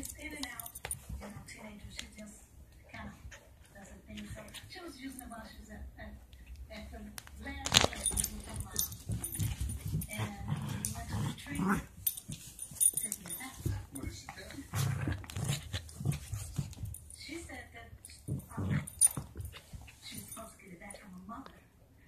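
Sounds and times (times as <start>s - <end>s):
muffled television talk: 0.0s - 22.0s.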